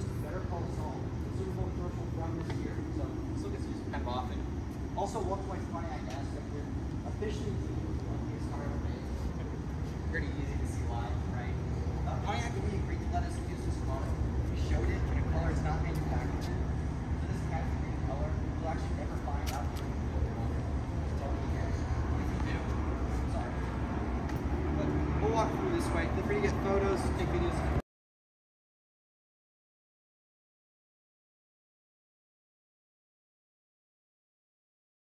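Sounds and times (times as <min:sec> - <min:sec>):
steady low rumble: 0:00.0 - 0:27.8.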